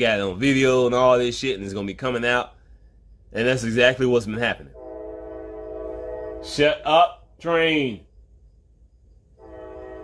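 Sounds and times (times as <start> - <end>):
train horn blowing: 4.7 - 7.1, 9.4 - 10.0.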